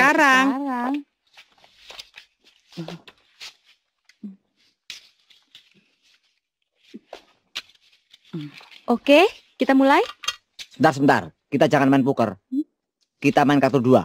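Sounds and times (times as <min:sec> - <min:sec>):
playing cards shuffling: 0:00.7 - 0:10.8.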